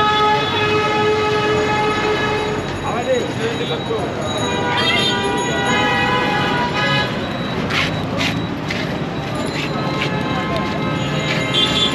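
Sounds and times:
street traffic: 0:00.0 - 0:11.9.

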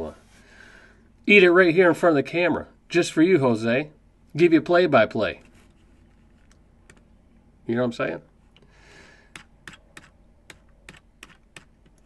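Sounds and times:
computer mouse clicks: 0:09.3 - 0:12.0.

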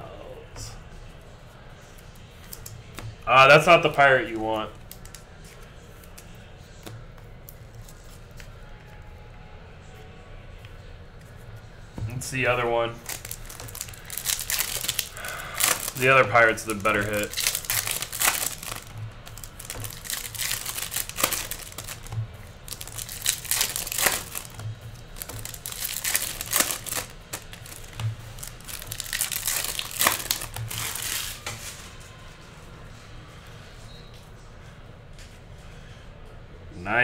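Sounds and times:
cards shuffled: 0:01.9 - 0:03.1, 0:13.0 - 0:31.8
foil wrapper crinkling and tearing: 0:12.9 - 0:31.7.

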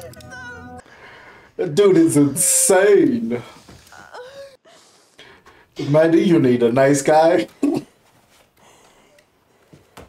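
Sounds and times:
man speaking: 0:01.6 - 0:03.6, 0:05.8 - 0:07.6.

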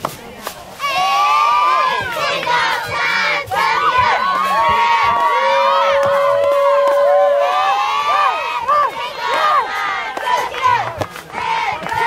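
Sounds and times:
girls yelling a cheer: 0:00.8 - 0:12.0.

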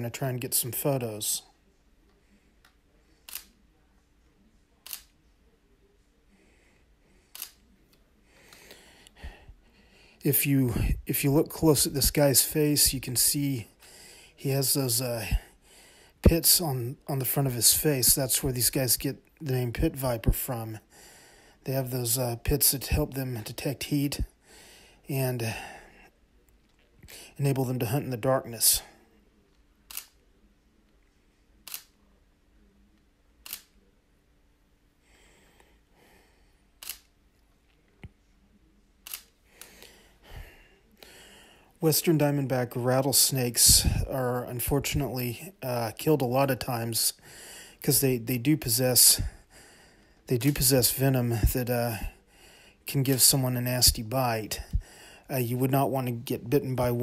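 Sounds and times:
camera shutter click: 0:03.3 - 0:03.6, 0:04.8 - 0:05.1, 0:29.9 - 0:30.2, 0:31.7 - 0:32.0, 0:33.4 - 0:33.7, 0:36.8 - 0:37.1, 0:39.0 - 0:39.7.

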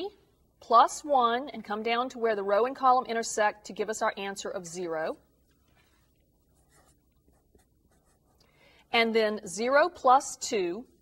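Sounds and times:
felt-tip marker writing on paper: 0:06.5 - 0:08.4.

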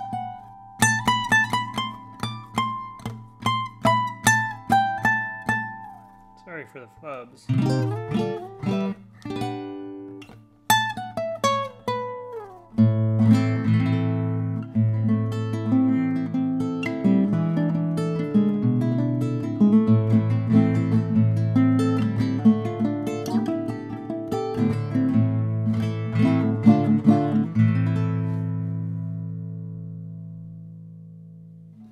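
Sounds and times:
nylon-string guitar fingerstyle: 0:00.0 - 0:31.9.

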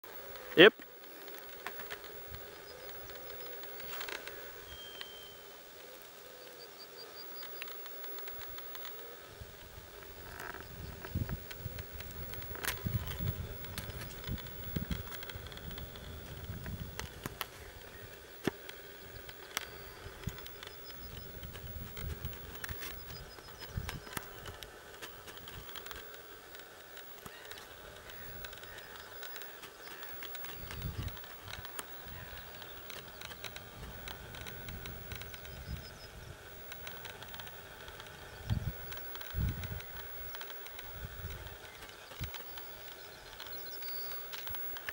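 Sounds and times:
insects buzzing: 0:00.0 - 0:44.9
faint short bird chirps: 0:04.6 - 0:05.4
wind gusts on microphone: 0:09.2 - 0:18.2, 0:18.9 - 0:24.6, 0:30.2 - 0:43.3.

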